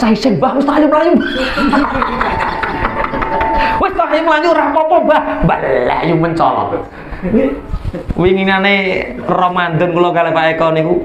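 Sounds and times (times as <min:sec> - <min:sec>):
man laughing into a microphone: 0:01.2 - 0:03.7, 0:07.1 - 0:08.2.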